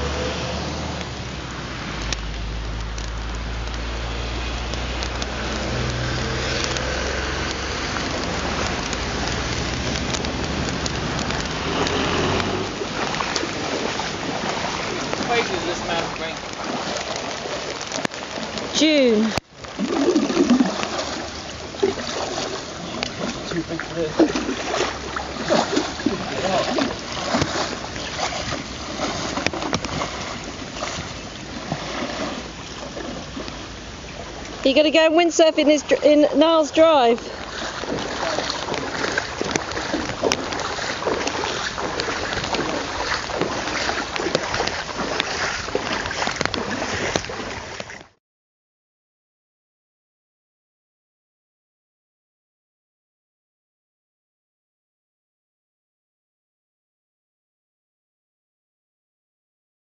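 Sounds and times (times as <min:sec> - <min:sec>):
wind buffeting microphone: 0:00.0 - 0:48.0
boots wading through water: 0:00.0 - 0:48.2
floodwater splashing and sloshing: 0:00.0 - 0:48.2.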